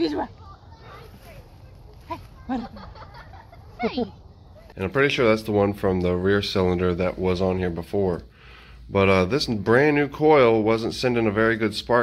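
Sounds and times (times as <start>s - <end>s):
person laughing: 2.5s - 4.0s.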